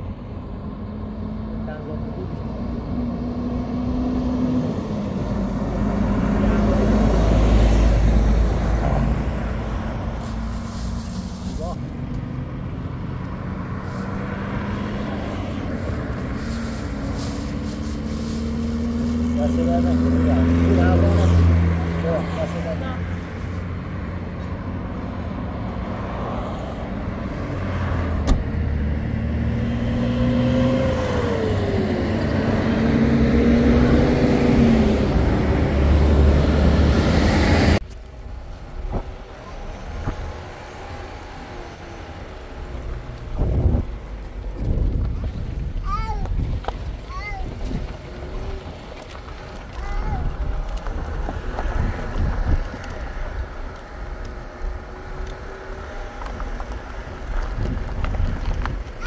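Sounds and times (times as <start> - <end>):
highway traffic passing: 0.0 - 59.0.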